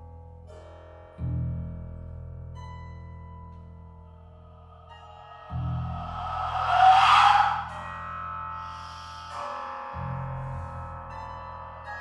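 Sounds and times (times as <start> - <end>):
low held chord: 3.8 - 11.0
loud rushing noisy swell: 4.7 - 9.3.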